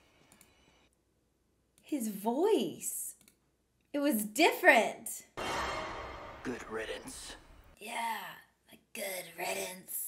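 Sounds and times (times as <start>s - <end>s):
woman speaking: 1.9s - 3.2s, 7.8s - 10.0s.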